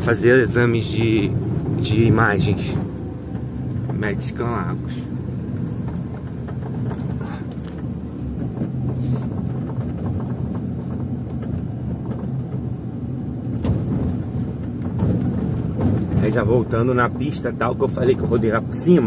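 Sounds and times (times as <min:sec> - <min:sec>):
car engine and tyre hum: 0:00.0 - 0:19.0.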